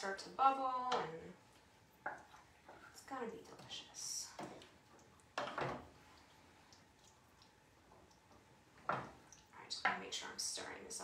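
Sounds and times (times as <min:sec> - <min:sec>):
sauce squishing while stirred: 0:01.4 - 0:09.6.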